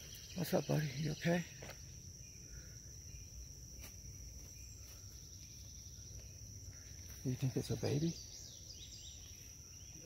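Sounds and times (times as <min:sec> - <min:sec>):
faint chirping bird calls: 0:00.0 - 0:10.0
high-pitched insect chorus: 0:00.0 - 0:10.0.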